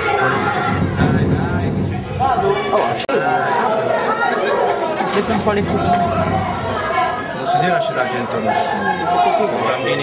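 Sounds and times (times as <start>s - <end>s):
boys talking over each other: 0.0s - 10.0s.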